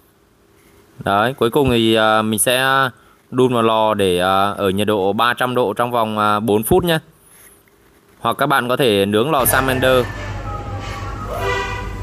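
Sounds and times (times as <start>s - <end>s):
low mechanical hum with hiss: 0.0s - 12.0s
faint horn-like tone: 9.4s - 12.0s.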